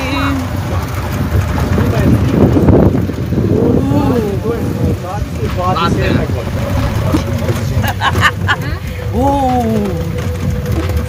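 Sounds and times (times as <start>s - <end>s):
vehicle rumble and wind noise: 0.0s - 11.0s
passengers' voices: 5.5s - 10.3s.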